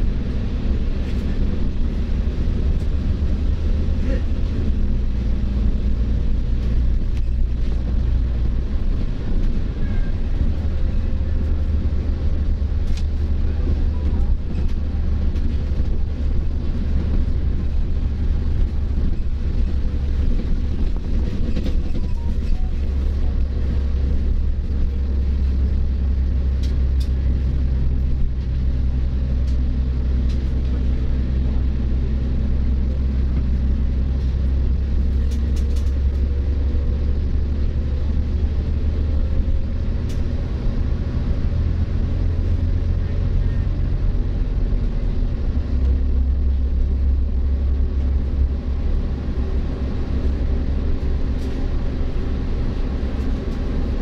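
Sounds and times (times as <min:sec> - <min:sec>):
bus engine rumble: 0:00.0 - 0:54.0
road noise: 0:00.0 - 0:54.0.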